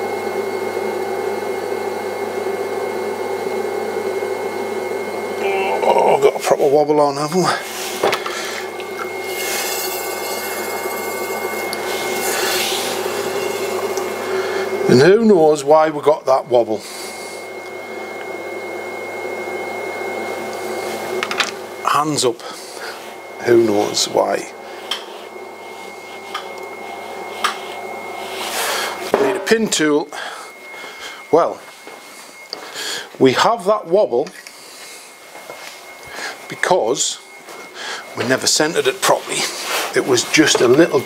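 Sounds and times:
potter's wheel humming: 0:00.0 - 0:41.0
thin high whine: 0:03.5 - 0:41.0
potter's wheel running: 0:05.4 - 0:16.7, 0:38.2 - 0:41.0.

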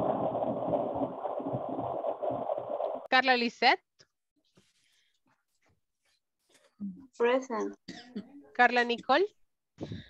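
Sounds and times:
muffled rushing noise with low rumble: 0:00.0 - 0:03.1.

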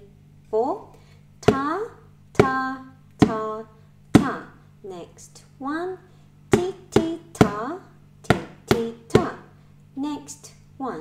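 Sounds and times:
person speaking rhythm syllables: 0:00.0 - 0:11.0
stick tapping plastic tub: 0:01.4 - 0:04.5, 0:06.5 - 0:09.5.

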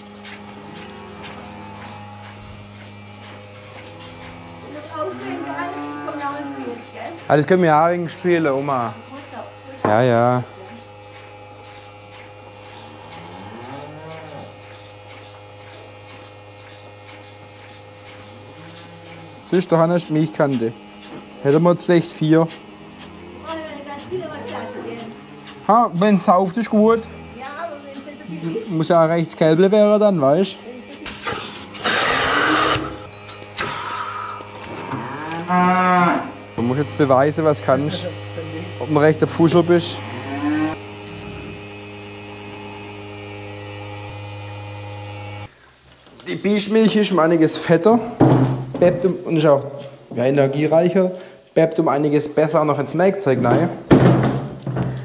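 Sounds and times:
milking machine hum: 0:00.0 - 0:45.6
cow mooing: 0:00.4 - 0:07.2, 0:12.8 - 0:14.6, 0:18.4 - 0:19.6, 0:22.7 - 0:27.8, 0:33.9 - 0:36.4, 0:39.8 - 0:41.6.

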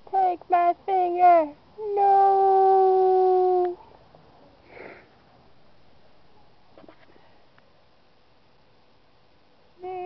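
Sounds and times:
high voice drawing out no: 0:01.0 - 0:03.8
faint breath: 0:04.6 - 0:05.2, 0:07.0 - 0:07.6.

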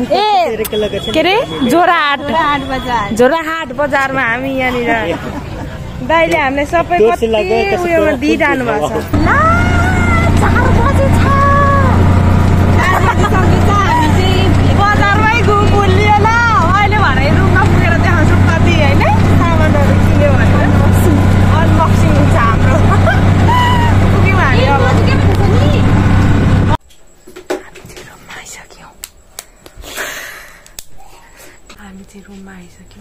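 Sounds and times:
auto-rickshaw engine drone: 0:00.0 - 0:26.8
women shouting and laughing: 0:07.4 - 0:25.9.

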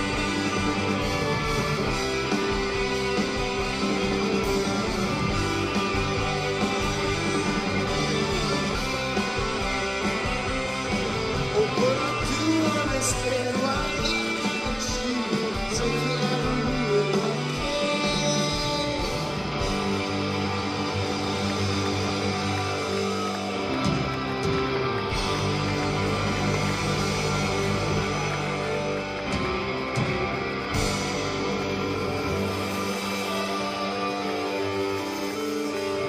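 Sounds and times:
rock band playing live: 0:00.0 - 0:36.0.

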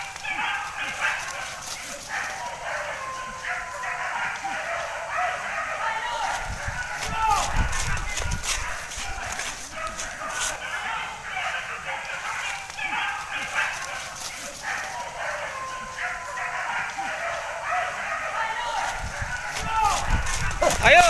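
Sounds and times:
dogs barking: 0:00.0 - 0:21.0
crashing through vegetation: 0:06.1 - 0:10.7, 0:18.6 - 0:21.0.

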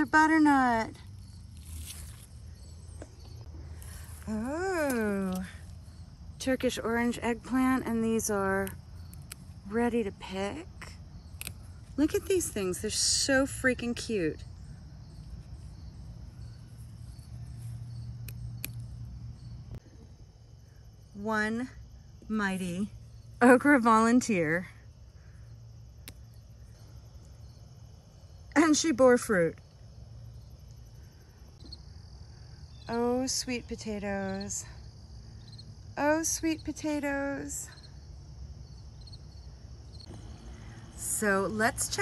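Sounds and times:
insects chirring: 0:00.0 - 0:42.0
low outdoor rumble: 0:00.0 - 0:42.0
rustling of leaves moved by hand: 0:01.4 - 0:05.5
low hum: 0:40.0 - 0:42.0.

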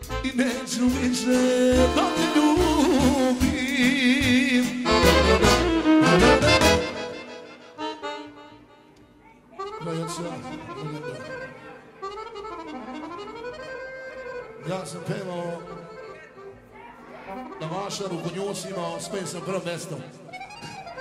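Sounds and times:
solo accordion melody: 0:00.0 - 0:21.0.

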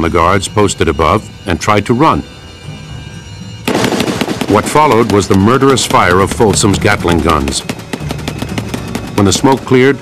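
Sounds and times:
soft low music: 0:00.0 - 0:10.0
rapid gunfire: 0:03.7 - 0:10.0.

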